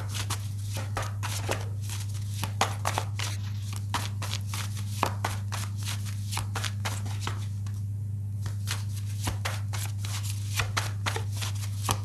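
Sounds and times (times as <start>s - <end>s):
cards being shuffled: 0.0s - 7.8s, 8.4s - 12.0s
steady low hum: 0.0s - 12.0s.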